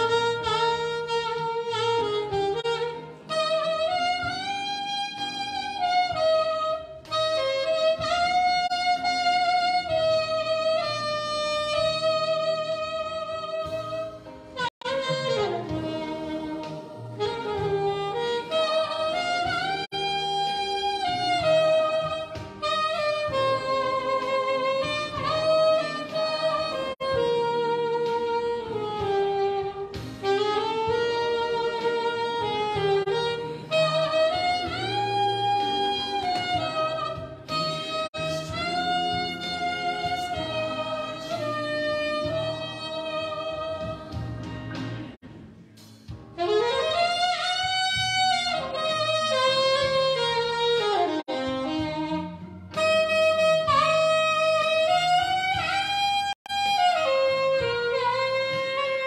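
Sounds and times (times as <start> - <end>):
saxophone playing slow melody: 0.0 - 45.2, 46.3 - 59.0.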